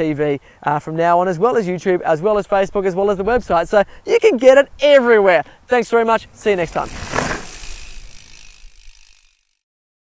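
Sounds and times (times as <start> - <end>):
bike hub ticking: 6.4 - 9.6.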